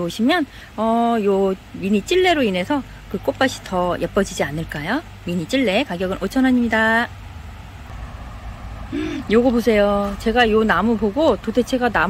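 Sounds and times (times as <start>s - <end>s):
low outdoor rumble: 0.0s - 12.0s
woman laughing: 8.9s - 9.3s.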